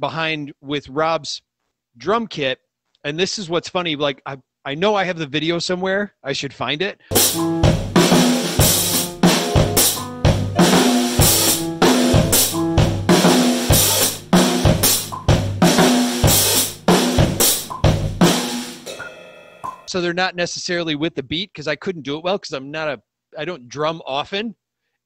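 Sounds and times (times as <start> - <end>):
drum kit playing: 7.1 - 19.9.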